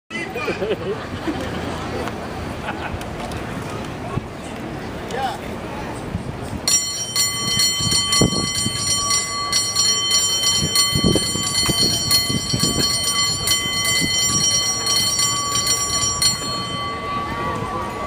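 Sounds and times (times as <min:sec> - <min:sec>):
cable car bell ringing rapidly: 0:06.6 - 0:18.0.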